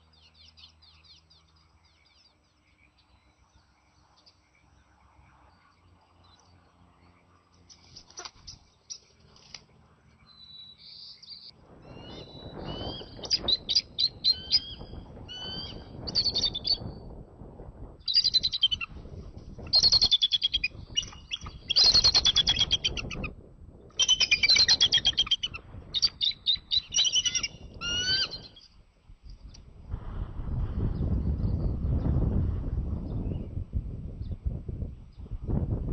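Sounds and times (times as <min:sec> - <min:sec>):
eagles calling: 0:11.9 - 0:16.8, 0:18.1 - 0:19.0, 0:19.7 - 0:23.3, 0:23.9 - 0:28.7.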